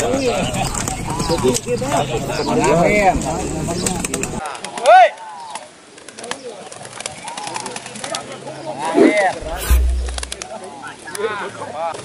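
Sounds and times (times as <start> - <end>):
outdoor crowd: 0.0 - 12.0
low rumble: 9.4 - 10.4.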